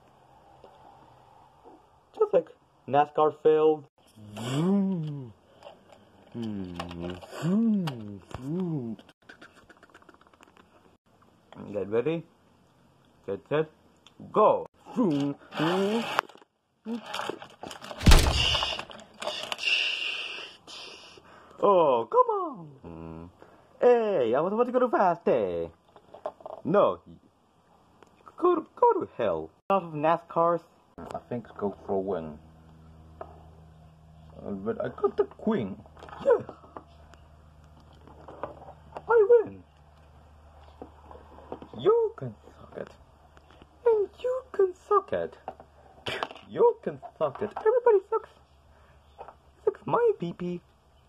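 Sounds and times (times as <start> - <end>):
person making engine noises: 4.2 - 5.6, 6.3 - 10.4.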